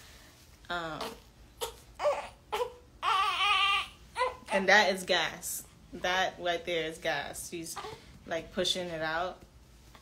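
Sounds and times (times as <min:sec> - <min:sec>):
newborn baby fussing cries: 0:01.0 - 0:04.8.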